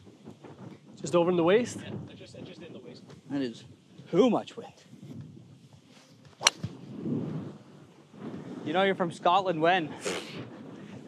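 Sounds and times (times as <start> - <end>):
golf club striking ball: 6.3 - 6.8.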